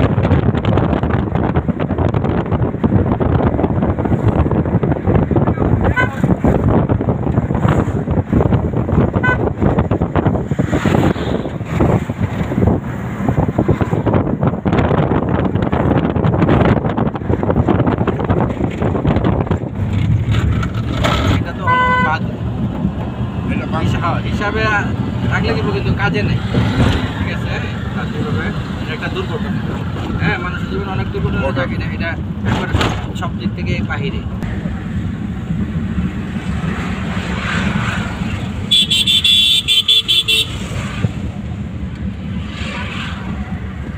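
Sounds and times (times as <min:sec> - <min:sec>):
van engine and road rumble: 0:00.0 - 0:43.9
vehicle horn short toots: 0:09.2 - 0:09.5, 0:21.6 - 0:22.2, 0:38.7 - 0:40.6.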